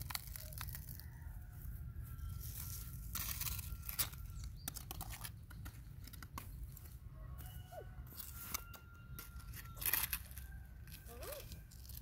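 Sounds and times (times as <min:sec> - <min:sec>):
toy shovel scraping gravel: 0:00.0 - 0:12.0.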